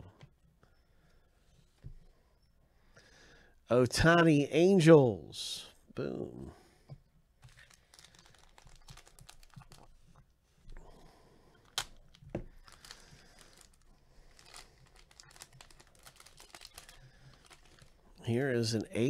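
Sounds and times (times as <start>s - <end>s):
foil wrapper tearing and crinkling: 7.5s - 9.9s, 11.6s - 18.0s.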